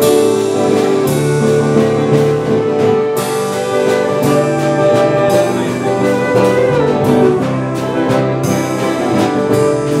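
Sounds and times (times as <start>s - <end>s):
drum kit steady beat: 0.0s - 10.0s
electric guitar: 0.0s - 10.0s
strummed acoustic guitars: 0.0s - 10.0s
bowed fiddle: 0.6s - 10.0s.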